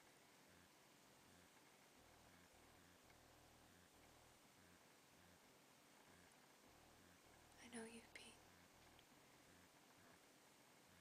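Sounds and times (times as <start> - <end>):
person whispering: 7.6 - 8.4.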